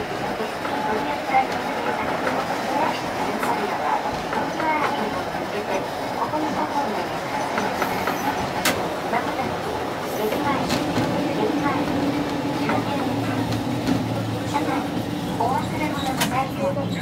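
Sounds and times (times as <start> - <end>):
tram wheels and motors rumbling: 0.0 - 17.0.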